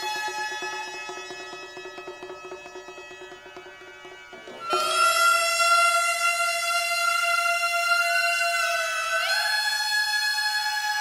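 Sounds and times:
wind instruments holding long notes: 0.0s - 11.0s.

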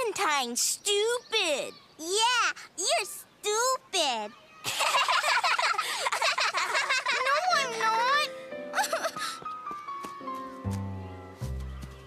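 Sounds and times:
boys laughing in cartoon voices: 4.6s - 7.8s, 8.7s - 9.4s.

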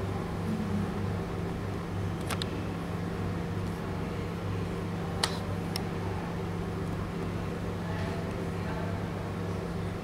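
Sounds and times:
low hum: 0.0s - 1.6s.

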